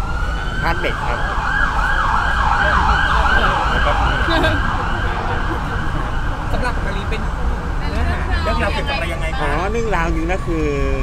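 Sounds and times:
siren in yelp mode: 0.0 - 6.4.

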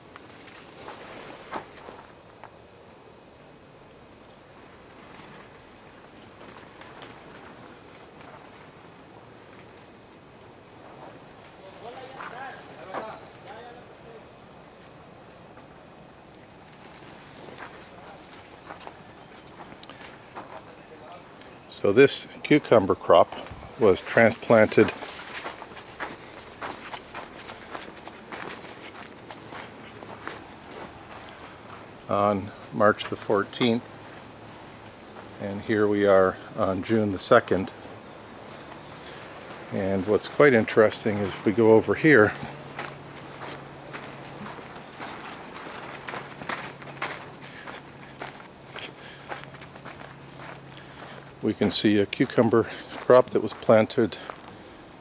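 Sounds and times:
steady background hiss: 0.0 - 55.0
soft footsteps: 16.7 - 20.8, 23.3 - 35.8, 38.4 - 54.6.

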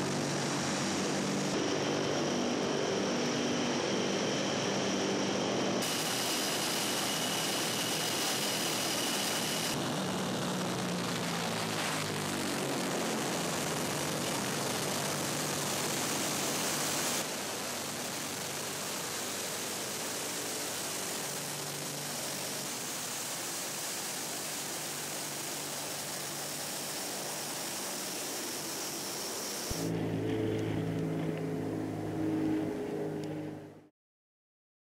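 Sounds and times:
low propeller drone: 0.0 - 33.9
turboprop aircraft roaring: 0.0 - 33.9.

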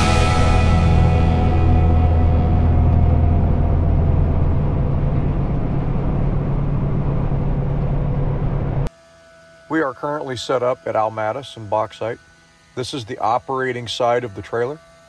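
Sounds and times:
truck engine and road noise: 0.0 - 8.9
man speaking: 9.7 - 12.2, 12.8 - 14.8.

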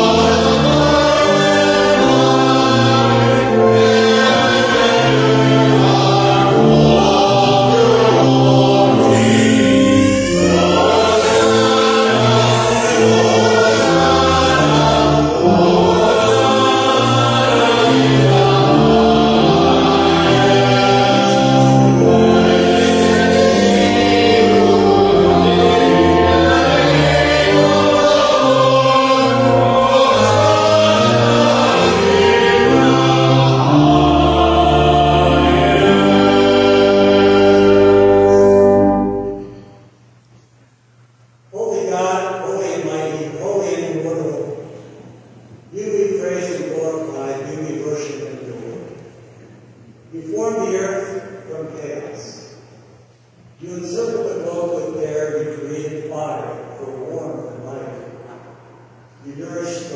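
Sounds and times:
voices singing a hymn: 0.0 - 39.9, 41.5 - 59.9
organ chords: 0.0 - 59.9.

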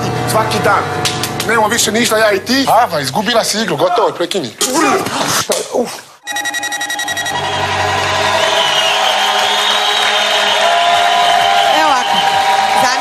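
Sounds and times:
electronic transition jingle: 6.2 - 7.5.

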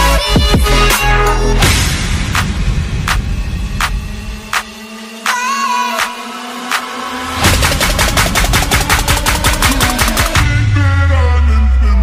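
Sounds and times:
heavy bass: 0.0 - 12.0
rapid machine-gun-like hits: 7.4 - 10.5.

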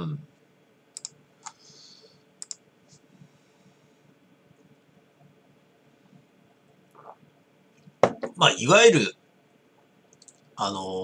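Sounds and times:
computer clicks: 0.9 - 1.6, 2.4 - 2.6, 10.1 - 10.5.

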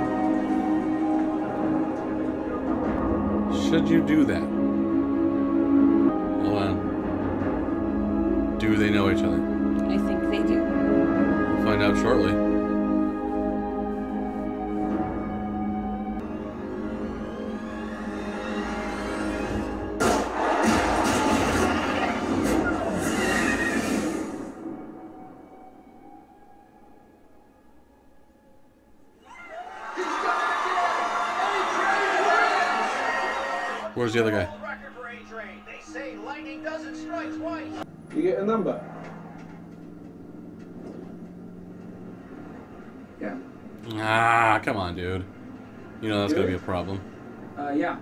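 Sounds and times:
ominous music: 0.0 - 29.2, 29.8 - 48.0.

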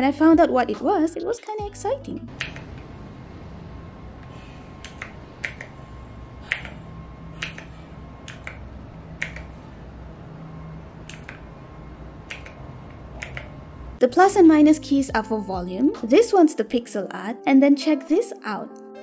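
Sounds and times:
low steady hum: 0.0 - 16.4.

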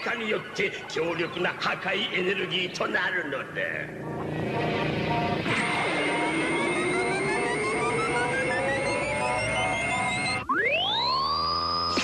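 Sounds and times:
rush of noise: 3.8 - 10.4
electronic drone: 3.8 - 12.0
rising bleeps: 4.0 - 12.0
steady high tone: 4.0 - 12.0.

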